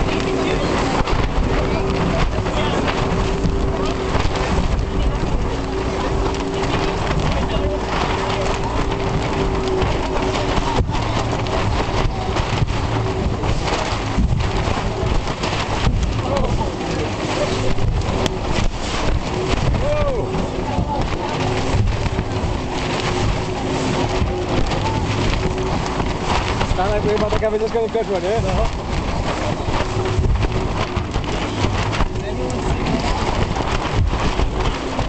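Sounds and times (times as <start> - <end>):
motorboat engine running: 0.0 - 35.0
rushing water: 0.0 - 35.0
spray splashing on boat: 0.0 - 35.0.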